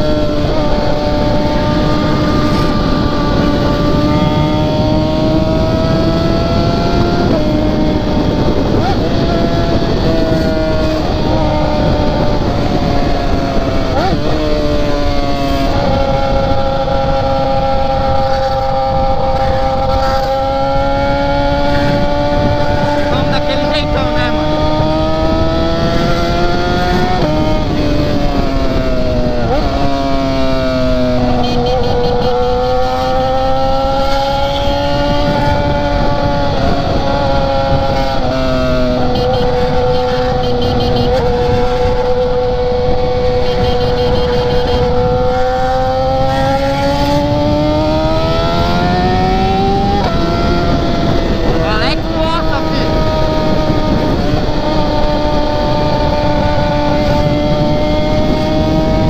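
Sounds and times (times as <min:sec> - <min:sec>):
heavy wind rush: 0:00.0 - 0:59.0
motorcycle engine running: 0:00.0 - 0:59.0.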